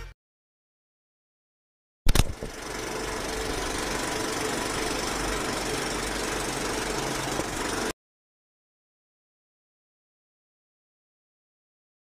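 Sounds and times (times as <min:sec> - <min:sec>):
projector click: 0:02.1 - 0:02.5
film projector rattle: 0:02.1 - 0:08.0.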